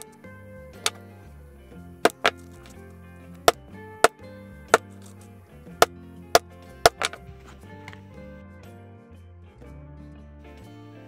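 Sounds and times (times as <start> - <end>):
soft background music: 0.0 - 11.0
mallet striking chisel through leather: 2.0 - 2.7, 5.8 - 7.2.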